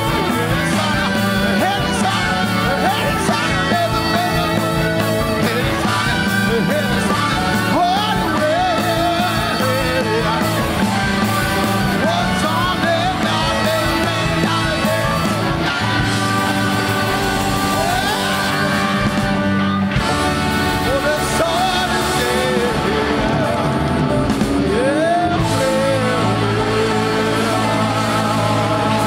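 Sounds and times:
live rock band playing: 0:00.0 - 0:29.0
people singing: 0:00.0 - 0:29.0.

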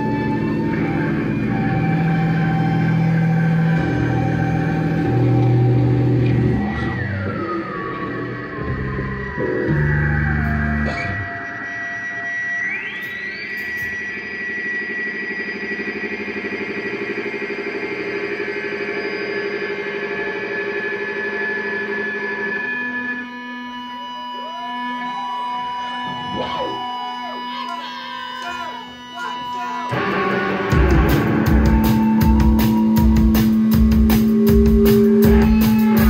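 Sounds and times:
electric guitar ambient drone: 0:00.0 - 0:36.0.

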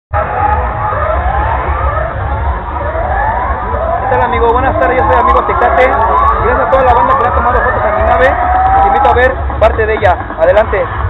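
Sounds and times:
siren wail: 0:00.1 - 0:09.7
heavy low rumble: 0:00.1 - 0:11.0.

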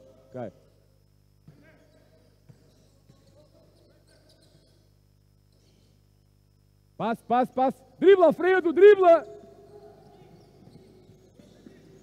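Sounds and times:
basketball bouncing on court floor: 0:01.4 - 0:03.7, 0:09.3 - 0:12.0.

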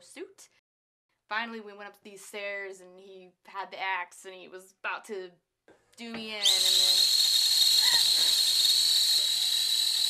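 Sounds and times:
kettle whistling: 0:06.4 - 0:10.0.

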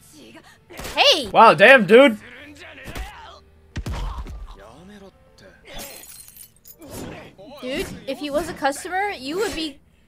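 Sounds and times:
background music: 0:00.0 - 0:10.0
character dialogue: 0:00.8 - 0:03.2.

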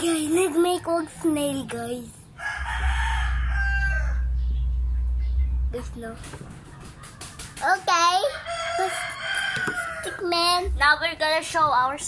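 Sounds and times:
rooster crowing: 0:02.4 - 0:04.4, 0:08.3 - 0:10.3
low microphone rumble: 0:02.6 - 0:06.7.

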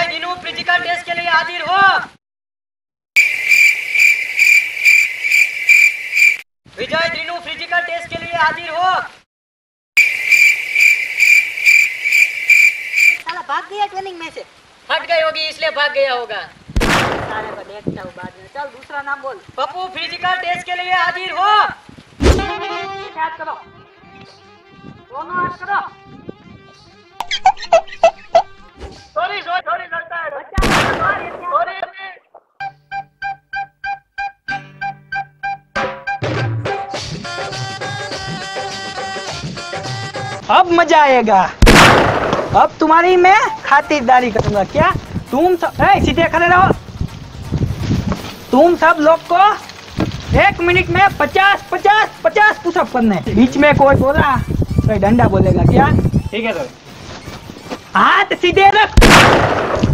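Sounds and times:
cricket chirping: 0:03.2 - 0:06.4, 0:10.0 - 0:13.2
loud bang: 0:41.6 - 0:42.6, 0:59.0 - 0:59.9
man's voice: 0:42.6 - 0:46.8, 0:50.3 - 0:56.8.

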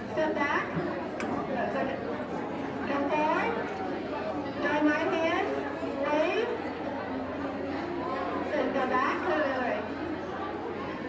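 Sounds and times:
crowd chatter in a large hall: 0:00.0 - 0:11.0.

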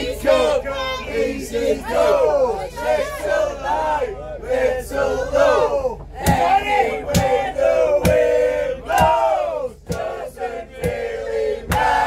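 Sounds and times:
group of people singing: 0:00.0 - 0:12.0.

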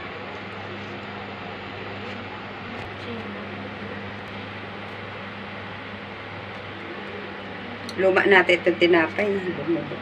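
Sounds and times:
machine hum and hiss: 0:00.0 - 0:10.0.

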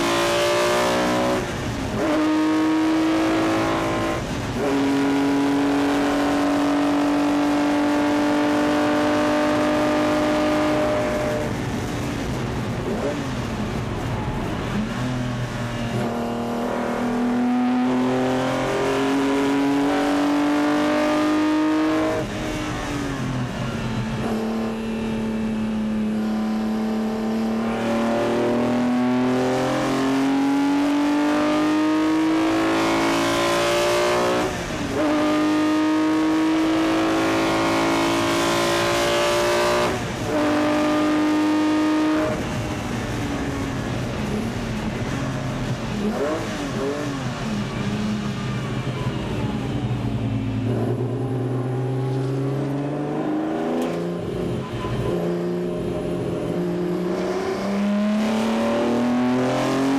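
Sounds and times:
racing car engine accelerating: 0:00.0 - 0:59.9.

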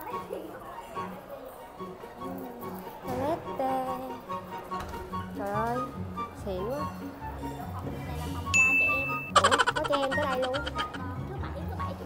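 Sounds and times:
background music: 0:00.0 - 0:12.0
sparkling ding flourish: 0:08.6 - 0:09.3.

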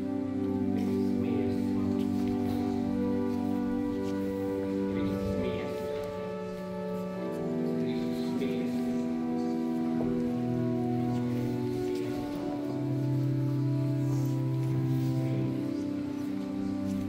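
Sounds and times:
organ playing chords: 0:00.0 - 0:17.0.

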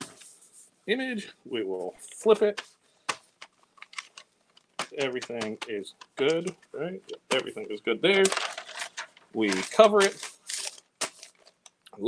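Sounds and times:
paper crinkling and tapping: 0:02.2 - 0:11.8.

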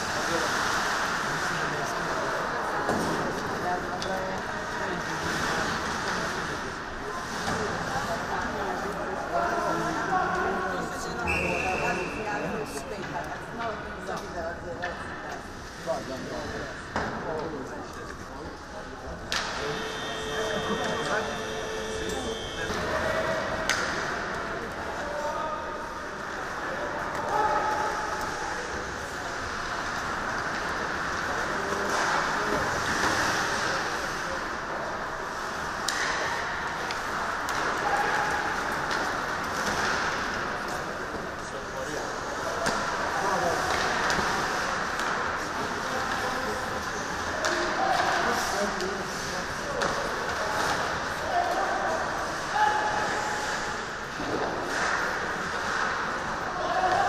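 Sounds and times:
on-ice hockey noise: 0:00.0 - 0:57.0.

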